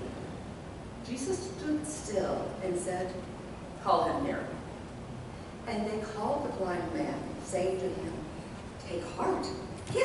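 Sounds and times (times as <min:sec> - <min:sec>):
woman reading aloud: 0:01.1 - 0:03.2, 0:03.8 - 0:04.6, 0:05.7 - 0:10.0.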